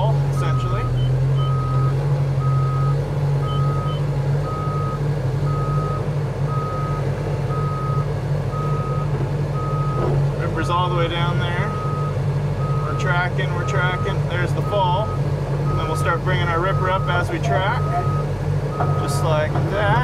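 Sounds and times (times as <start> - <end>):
diesel engine running: 0.0 - 20.0
reverse alarm beeping: 0.4 - 10.0, 11.6 - 19.3.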